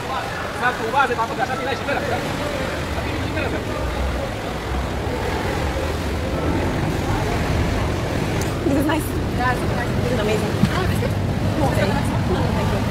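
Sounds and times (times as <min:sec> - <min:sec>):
faint voices: 0:00.0 - 0:12.9
motorboat engine rumbling: 0:00.0 - 0:12.9.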